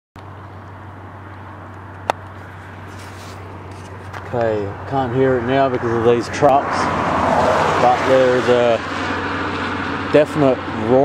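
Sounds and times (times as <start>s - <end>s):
trucks on the road: 0.2s - 11.0s.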